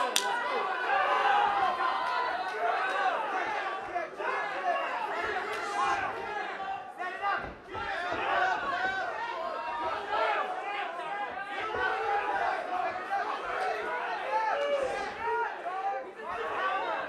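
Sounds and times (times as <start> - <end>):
spectators shouting: 0.0 - 17.0.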